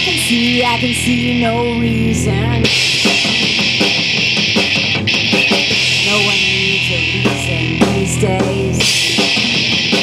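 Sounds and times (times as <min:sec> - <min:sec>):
drum kit with cymbals: 0:00.0 - 0:10.0
electric guitar chords: 0:00.0 - 0:10.0.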